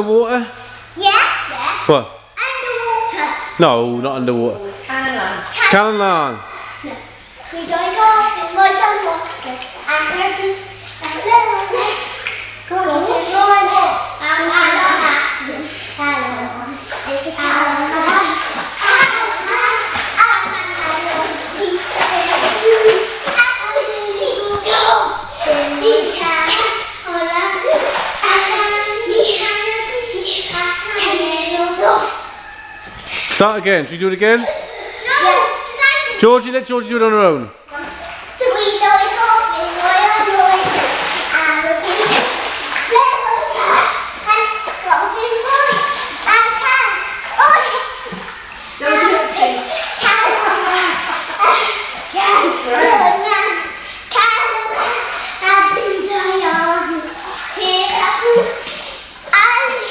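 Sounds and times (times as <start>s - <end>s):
water splashes: 0.5s - 59.9s
girls calling out: 6.5s - 33.3s, 34.4s - 36.3s, 41.6s - 58.7s
children chattering and half-singing: 6.6s - 32.9s, 37.8s - 59.9s.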